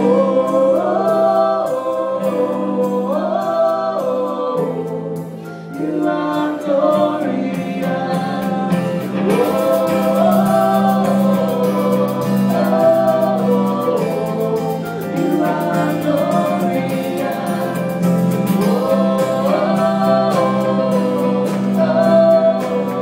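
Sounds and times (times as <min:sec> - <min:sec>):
voices singing held notes: 0:00.0 - 0:23.0
worship band playing: 0:00.0 - 0:23.0.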